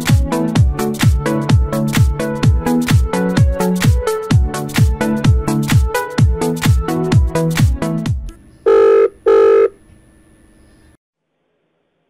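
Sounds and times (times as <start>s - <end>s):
telephone ringback tone: 8.7s - 9.8s.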